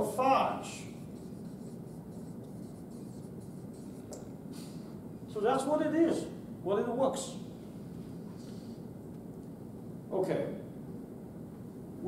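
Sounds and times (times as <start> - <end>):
room noise: 0.0 - 12.0
marker squeaking on whiteboard: 0.6 - 4.4.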